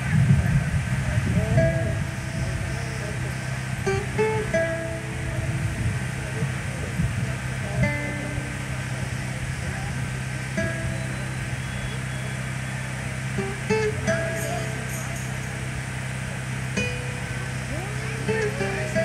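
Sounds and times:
acoustic guitar picked slowly: 0.0 - 19.0.

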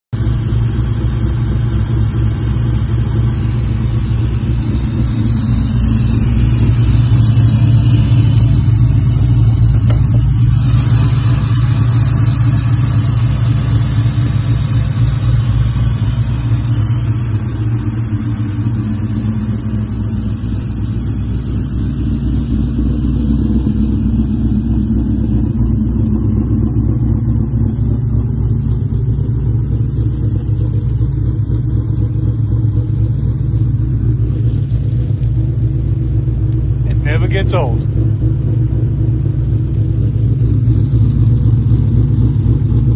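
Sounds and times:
car engine idling loud: 0.1 - 42.9.

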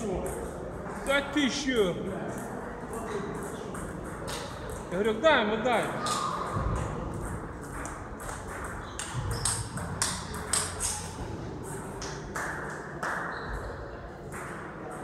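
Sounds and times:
table tennis balls clicking: 2.3 - 5.0, 6.0 - 15.0.

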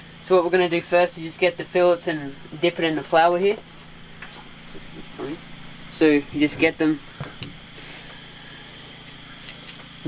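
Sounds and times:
faint high whine: 0.0 - 10.0
low mechanical hum: 0.0 - 10.0.

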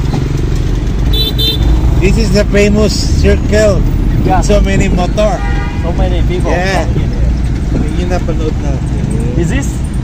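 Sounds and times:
jeep engine rumble and road noise: 0.0 - 10.0.

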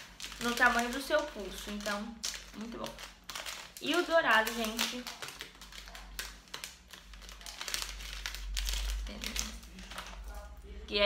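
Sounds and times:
packaging crinkling and rustling: 0.0 - 10.6.

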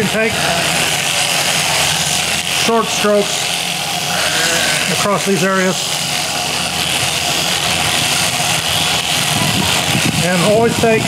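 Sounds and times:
electric shears cutting wool: 0.0 - 11.0.

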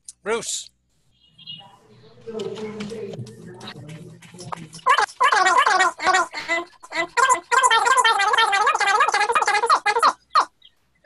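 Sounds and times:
person's high warbling voice: 4.9 - 10.2.

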